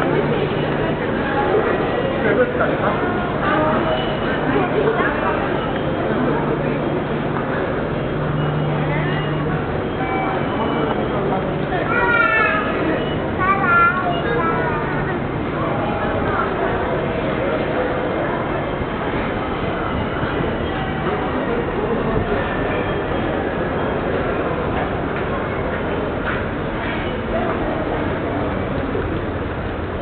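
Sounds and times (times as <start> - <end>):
crowd voices: 0.0 - 30.0
train rumbling: 0.0 - 30.0.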